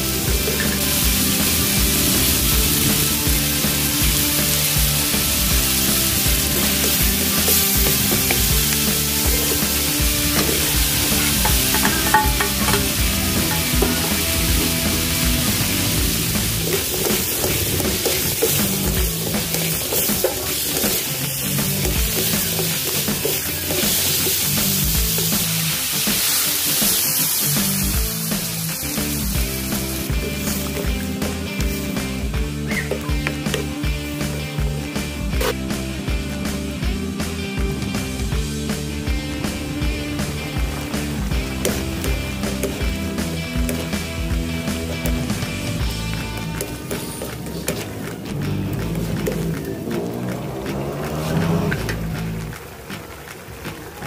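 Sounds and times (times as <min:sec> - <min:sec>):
food sizzling in a wok: 0:00.0 - 0:47.8
background music with a beat: 0:00.0 - 0:52.9.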